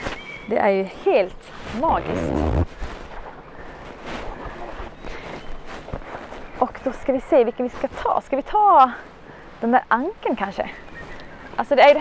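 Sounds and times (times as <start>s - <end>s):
faint outdoor background noise: 0.0s - 12.0s
wind rumbling on microphone: 0.8s - 12.0s.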